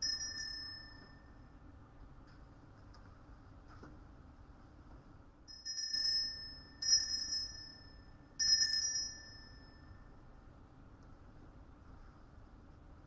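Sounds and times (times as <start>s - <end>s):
altar bell ringing: 0.0s - 1.5s, 5.5s - 10.1s.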